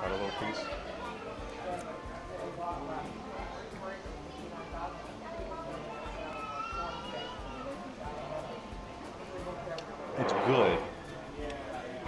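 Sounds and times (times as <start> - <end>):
indistinct background voices: 7.7 - 12.0.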